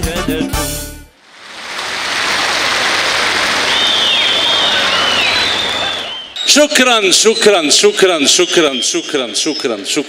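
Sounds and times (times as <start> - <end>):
children clapping and cheering: 1.5 - 6.3
high dipping whistle-like calls: 3.6 - 10.0.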